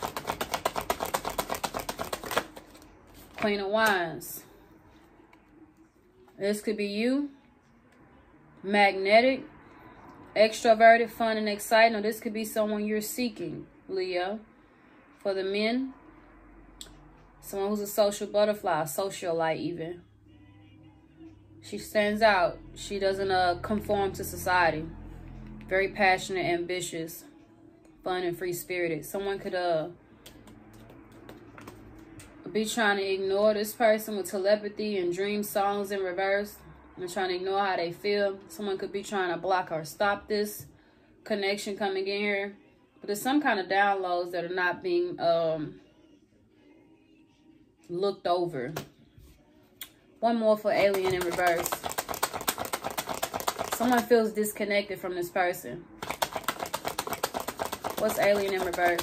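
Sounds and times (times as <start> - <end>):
cards clicking on wooden table: 0.0 - 3.5, 50.8 - 54.1, 56.0 - 59.0.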